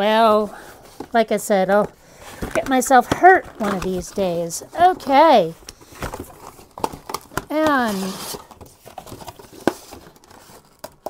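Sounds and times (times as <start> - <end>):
cardboard and plastic wrap rustling: 0.0 - 11.0.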